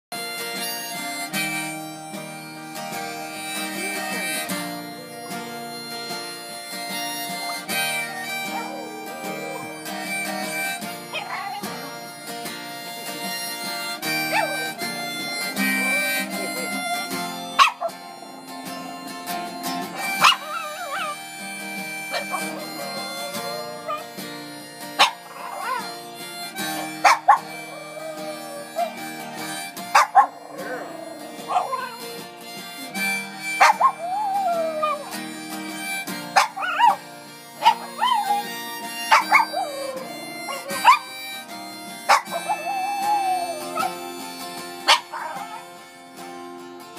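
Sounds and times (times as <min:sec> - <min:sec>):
acoustic guitar: 0:00.1 - 0:46.9
harmonica: 0:00.1 - 0:46.9
small dog howling: 0:07.4 - 0:12.1, 0:14.0 - 0:24.2, 0:25.0 - 0:25.9, 0:26.7 - 0:32.2, 0:32.8 - 0:35.2, 0:36.4 - 0:37.0, 0:37.6 - 0:45.7.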